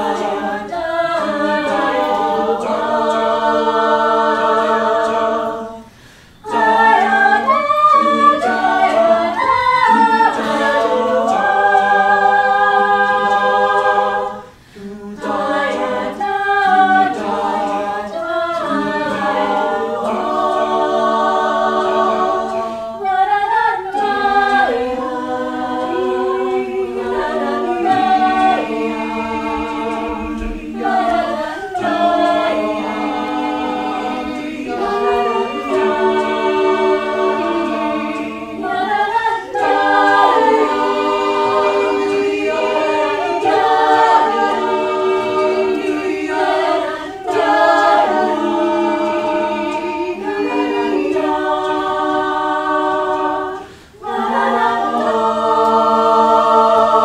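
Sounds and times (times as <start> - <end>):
choir singing in harmony: 0.0 - 57.0.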